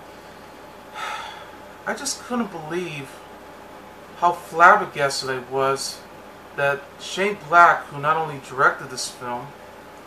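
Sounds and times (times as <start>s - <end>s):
faint room hiss: 0.0s - 10.0s
man inhaling through mouth: 0.9s - 1.6s
man speaking: 1.9s - 3.2s, 4.2s - 6.0s, 6.6s - 9.6s.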